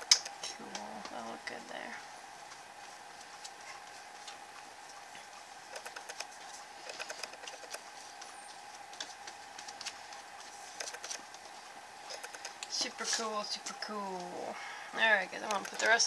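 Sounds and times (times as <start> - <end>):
faint hum: 0.0 - 16.0.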